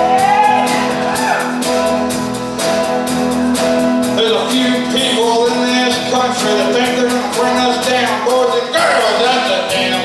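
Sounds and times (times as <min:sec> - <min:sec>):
slide electric guitar: 0:00.0 - 0:10.0
steady beat: 0:00.0 - 0:10.0
strummed acoustic guitar: 0:00.8 - 0:10.0.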